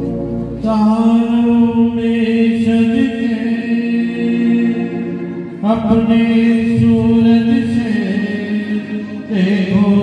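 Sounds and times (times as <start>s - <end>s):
man singing chant-like melody: 0.6s - 10.0s.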